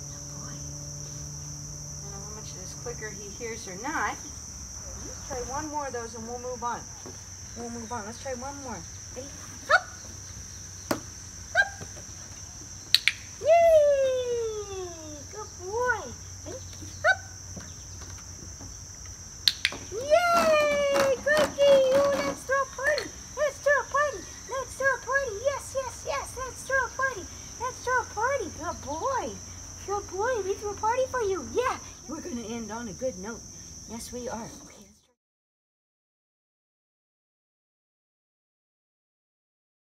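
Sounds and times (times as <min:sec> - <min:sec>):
insects trilling: 0:00.0 - 0:35.1
dog-training clicker clicks: 0:19.5 - 0:19.8.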